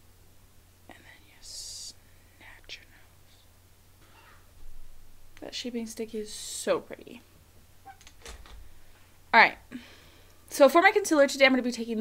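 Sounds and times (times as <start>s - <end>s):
faint whispering: 0.9s - 3.5s.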